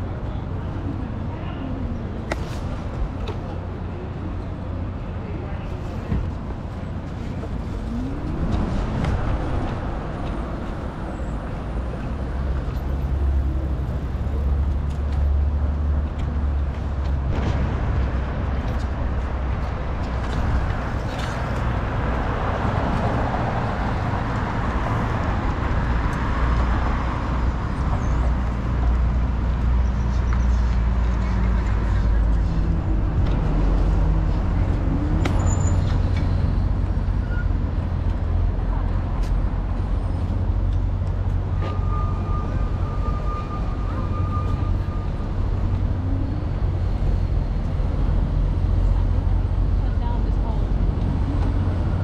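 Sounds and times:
traffic engines rumbling: 0.0 - 52.0.

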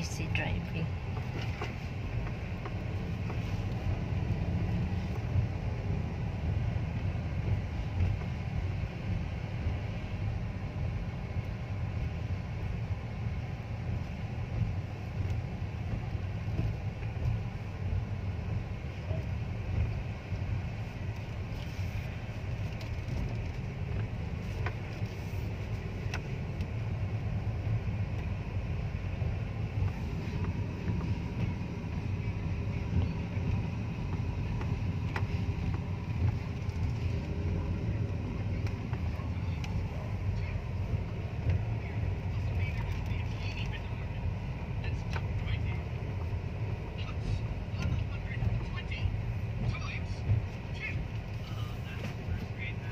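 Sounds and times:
engine and tyre rumble inside car: 0.0 - 52.9.

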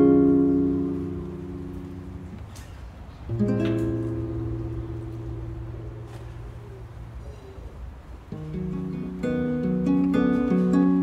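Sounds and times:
classical guitar chord ringing: 0.0 - 7.2, 8.3 - 11.0.

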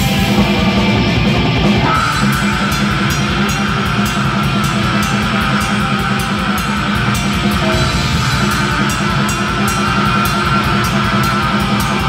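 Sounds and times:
distorted electric guitars: 0.0 - 12.0
drums: 0.0 - 12.0.

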